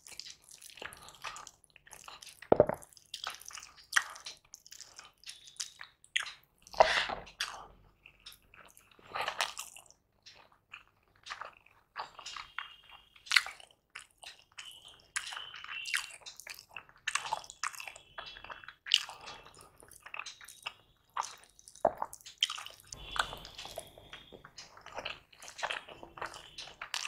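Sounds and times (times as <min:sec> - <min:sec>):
wet chewing: 0:00.0 - 0:27.0.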